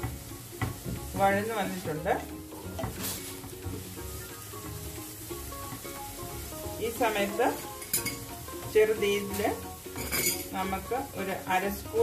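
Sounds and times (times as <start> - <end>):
utensils scraping frying pan: 0.7 - 10.8.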